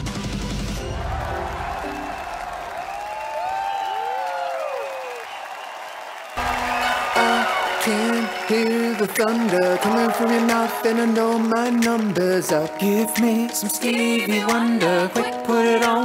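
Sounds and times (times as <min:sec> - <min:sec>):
studio audience applause and cheering: 0:00.0 - 0:16.0
pop song: 0:06.4 - 0:16.0
song with steady held notes: 0:06.4 - 0:16.0.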